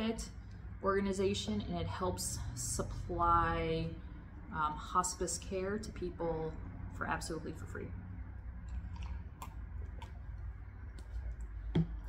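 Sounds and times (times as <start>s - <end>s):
low room hum: 0.0s - 12.0s
sipping and swallowing: 8.6s - 12.0s.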